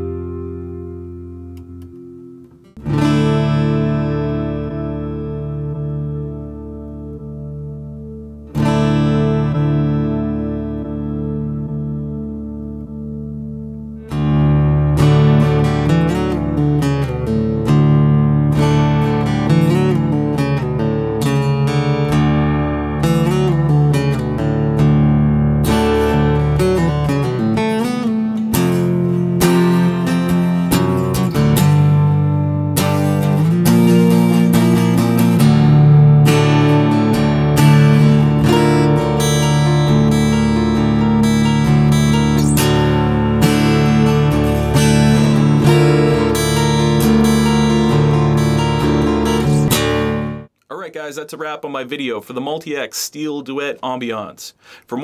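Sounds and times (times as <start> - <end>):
electro-acoustic guitar strumming: 0.0 - 50.6.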